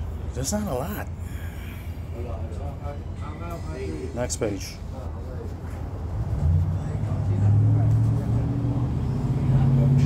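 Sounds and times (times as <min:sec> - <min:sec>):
low engine hum rising in pitch: 0:06.0 - 0:10.0.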